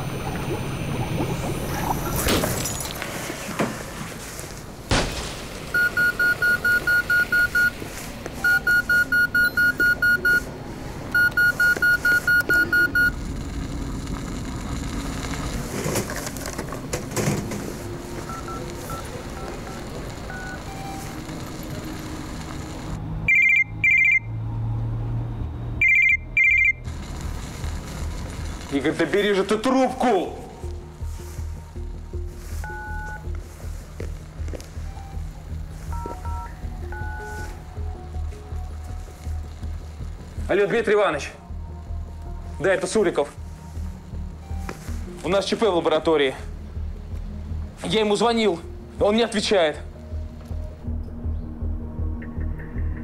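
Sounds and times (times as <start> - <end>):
film music: 0.0 - 3.6, 4.2 - 53.0
electronic telephone ringing: 5.8 - 7.7, 8.4 - 10.4, 11.1 - 13.2, 18.3 - 21.8, 22.4 - 24.3, 25.8 - 26.8.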